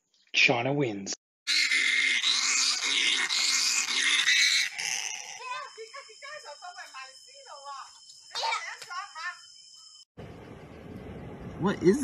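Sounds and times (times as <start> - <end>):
harsh raspy animal cry: 1.5 - 5.6.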